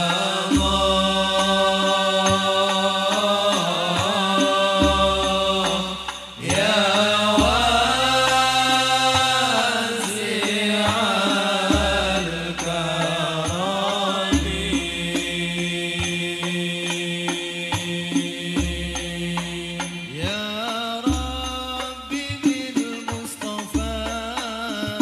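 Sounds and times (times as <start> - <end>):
men chanting in unison: 0.0 - 25.0.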